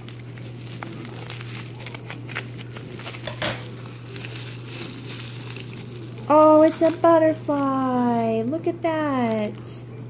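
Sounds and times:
plastic bag crinkling: 0:00.0 - 0:09.7
steady low hum: 0:00.0 - 0:10.0.

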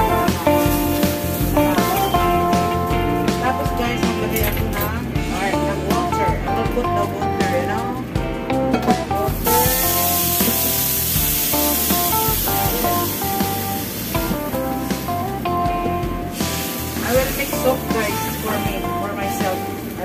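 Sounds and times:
running water hissing: 0:00.0 - 0:03.6, 0:09.2 - 0:20.0
background music: 0:00.0 - 0:20.0.

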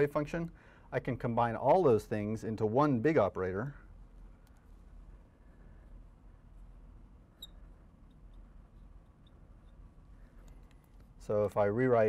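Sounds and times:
faint low room hum: 0:00.0 - 0:12.0
marker squeaking on glass: 0:07.3 - 0:07.7.

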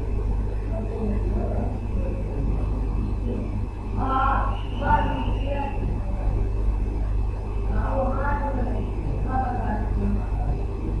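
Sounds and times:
faint indistinct sounds: 0:00.0 - 0:11.0
low background hum: 0:00.0 - 0:11.0.

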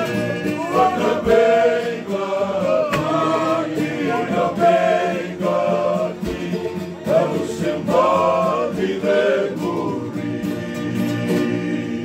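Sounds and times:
men singing in harmony: 0:00.0 - 0:12.0
strummed acoustic guitar: 0:00.0 - 0:12.0.

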